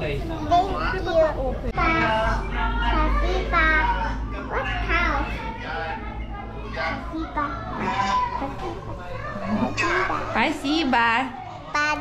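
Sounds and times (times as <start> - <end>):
child talking: 0.4 - 5.4, 6.7 - 8.8, 11.6 - 12.0.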